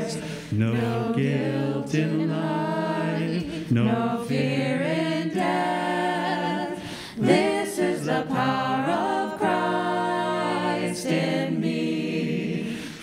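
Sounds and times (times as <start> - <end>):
group singing a hymn a cappella: 0.0 - 13.0.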